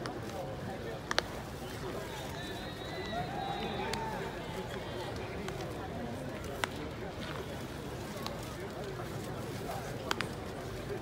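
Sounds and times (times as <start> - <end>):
outdoor background noise: 0.0 - 11.0
voices shouting across field: 2.2 - 4.6.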